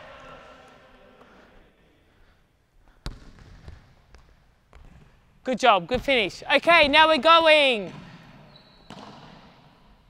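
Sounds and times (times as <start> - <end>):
basketball bouncing on hardwood floor: 3.0 - 5.1, 8.9 - 9.2.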